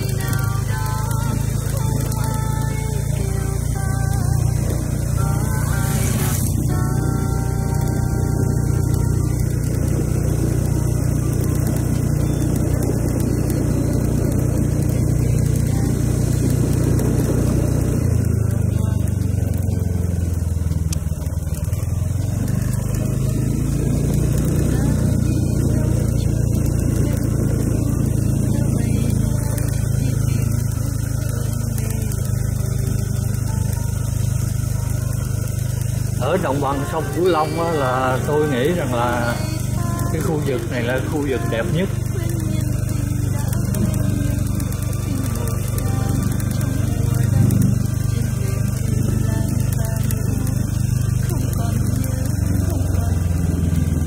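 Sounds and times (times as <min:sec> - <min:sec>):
motorbike engine running: 0:00.0 - 0:54.0
motorbike passing close: 0:00.0 - 0:54.0.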